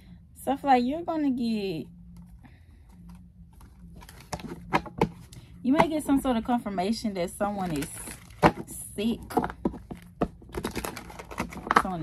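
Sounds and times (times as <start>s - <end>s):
cards being shuffled: 9.6s - 12.0s.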